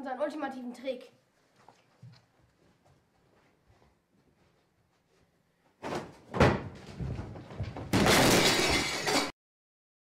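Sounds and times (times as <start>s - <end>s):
crockery clattering and breaking: 6.4s - 9.4s.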